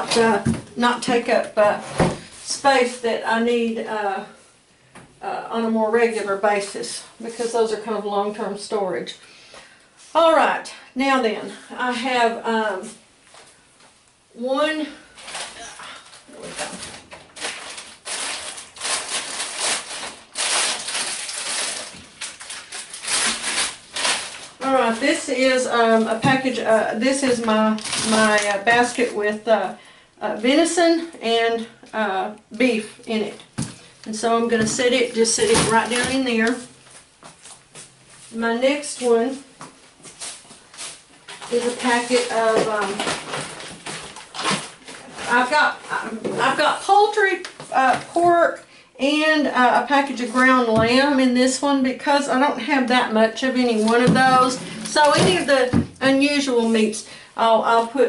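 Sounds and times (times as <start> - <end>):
plastic packaging rustling: 15.1 - 26.6, 27.3 - 29.2, 33.3 - 37.8, 40.0 - 46.6, 53.6 - 56.8.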